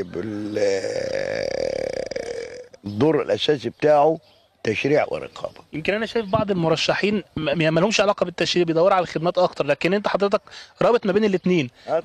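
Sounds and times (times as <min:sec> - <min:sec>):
man's creaky hesitation sound: 0:00.0 - 0:02.9
man speaking: 0:02.8 - 0:12.0.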